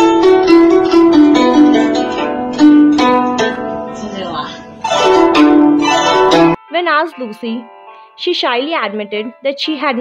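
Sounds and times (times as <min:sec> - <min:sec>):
plucked zither notes: 0:00.0 - 0:07.6.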